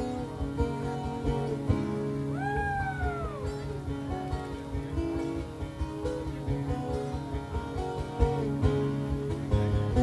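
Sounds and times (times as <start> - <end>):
acoustic guitar: 0.0 - 10.0
electric guitar: 0.0 - 10.0.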